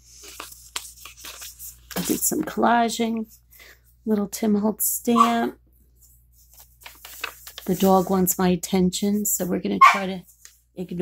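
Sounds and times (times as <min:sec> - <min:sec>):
crisp paper crackles: 0:00.0 - 0:02.6, 0:06.4 - 0:08.4
paper rustling and scraping: 0:00.0 - 0:02.6, 0:06.4 - 0:08.3.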